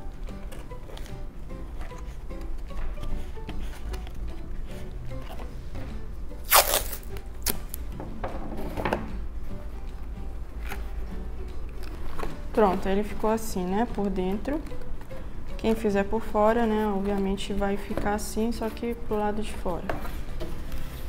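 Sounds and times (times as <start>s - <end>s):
masking tape tearing from roll: 6.4s - 7.8s.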